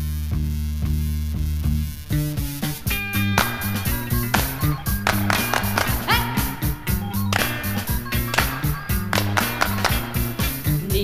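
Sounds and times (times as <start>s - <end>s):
bass guitar: 0.0s - 11.0s
steady drum beat: 0.8s - 11.0s
electric guitar: 2.1s - 11.0s.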